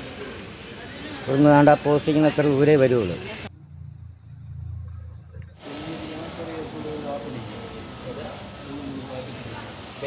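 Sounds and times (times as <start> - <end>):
faint voices talking: 0.0 - 3.6, 4.9 - 10.0
low hum: 3.5 - 5.7
steady hiss: 5.6 - 10.0.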